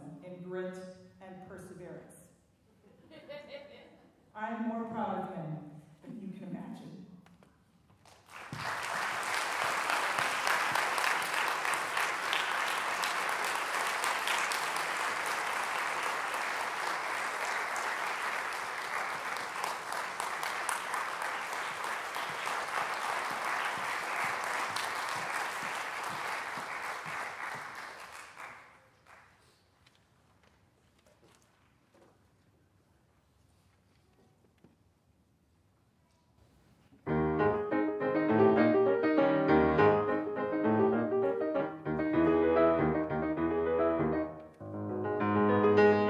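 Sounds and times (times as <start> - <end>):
audience applauding: 8.0 - 29.5.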